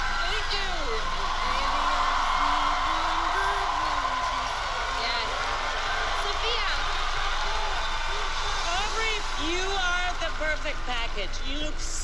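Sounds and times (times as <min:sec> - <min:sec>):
audience cheering: 0:00.0 - 0:11.6
audience clapping: 0:00.0 - 0:11.9.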